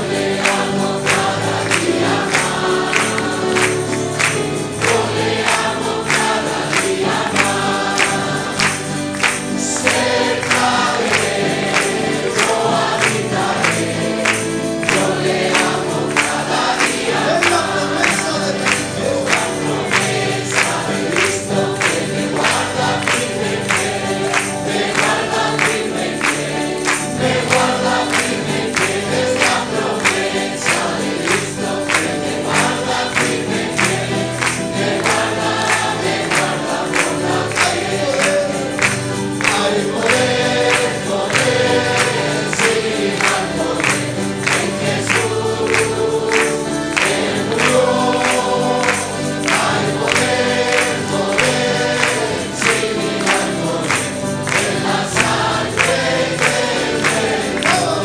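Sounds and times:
congregation singing: 0.0s - 58.0s
rhythmic hand-clapping: 0.0s - 58.0s.

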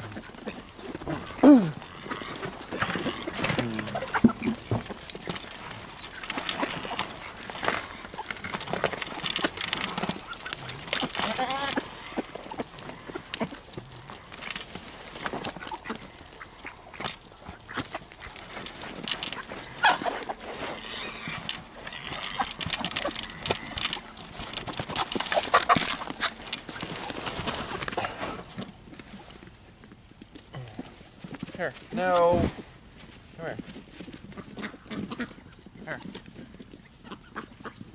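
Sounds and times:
animals crunching corn: 0.0s - 37.9s.

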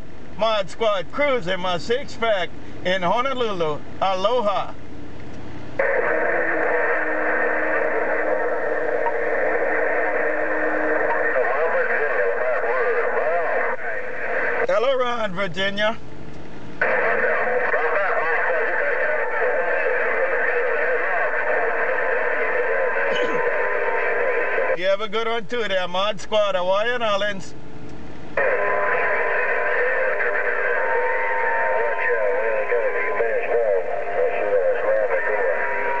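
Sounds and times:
radio static hiss: 0.0s - 36.0s
faint garbled radio voice: 5.8s - 16.0s, 16.8s - 27.6s, 28.4s - 36.0s.

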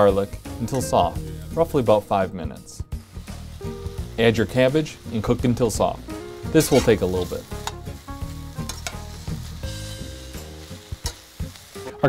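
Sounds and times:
background music: 0.0s - 12.0s
cabbage sizzling in a pan: 0.0s - 12.0s
spatula stirring in a pan: 6.4s - 11.7s.

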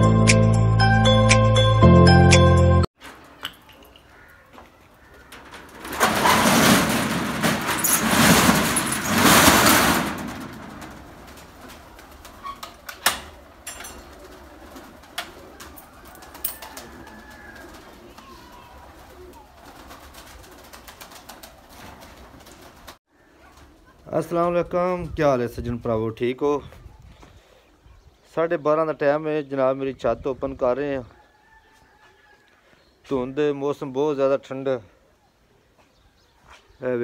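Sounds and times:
steel roller shutter rattling: 4.9s - 17.5s
wire-mesh door clicks and knocks: 5.2s - 14.1s
pigeons cooing: 11.2s - 24.0s.

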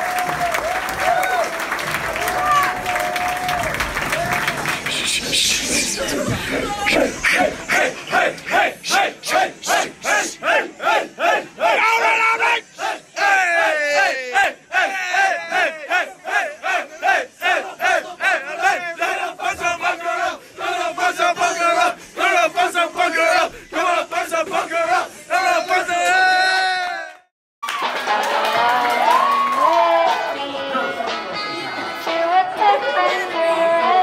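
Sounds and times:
teenagers shouting a chant: 6.3s - 26.8s.

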